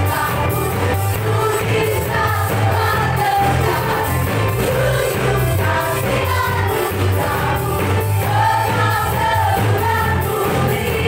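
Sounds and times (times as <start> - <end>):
bass: 0.0 - 11.0
drum kit steady beat: 0.0 - 11.0
keyboard: 0.0 - 11.0
singers singing together: 0.0 - 11.0.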